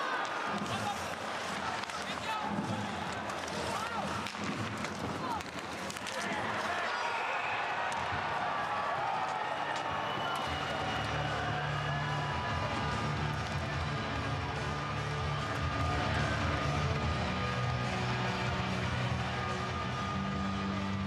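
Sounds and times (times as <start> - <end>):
skates sticks and puck knocks: 0.0 - 7.0
crowd noise: 0.0 - 21.0
music: 0.4 - 6.6, 8.8 - 21.0.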